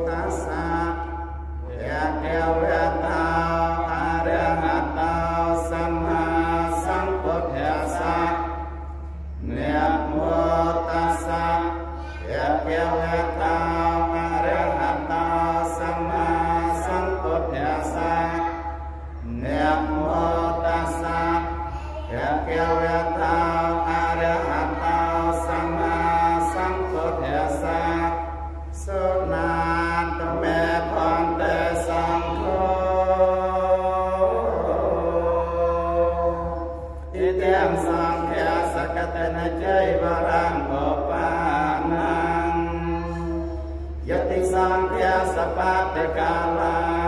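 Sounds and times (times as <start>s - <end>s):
monks chanting into microphone: 0.0s - 47.0s
steady low hum: 0.0s - 47.0s.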